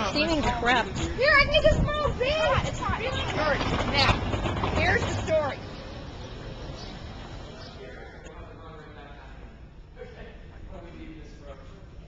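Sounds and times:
people talking: 0:00.0 - 0:05.7.

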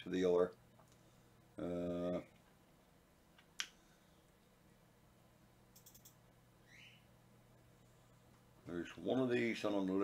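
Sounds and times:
computer mouse clicks: 0:05.7 - 0:06.2.

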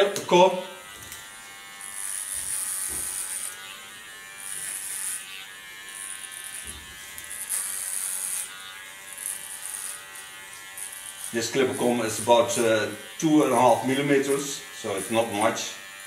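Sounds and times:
clipper cutting hair: 0:00.0 - 0:16.0
electric hair clipper buzzing: 0:00.0 - 0:16.0.

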